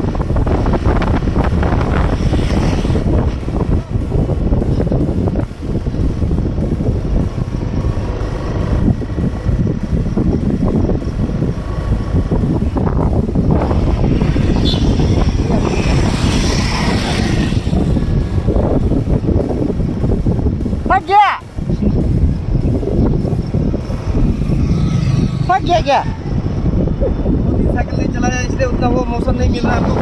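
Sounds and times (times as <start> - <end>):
road and traffic noise: 0.0 - 30.0
wind rumble on microphone: 0.0 - 30.0.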